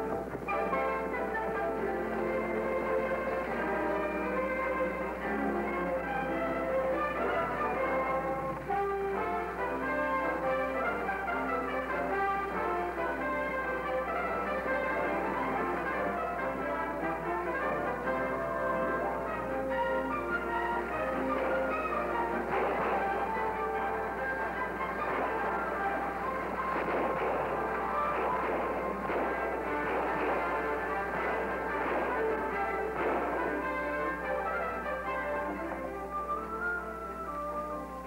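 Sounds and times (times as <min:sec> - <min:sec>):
orchestral music with brass: 0:00.0 - 0:38.0.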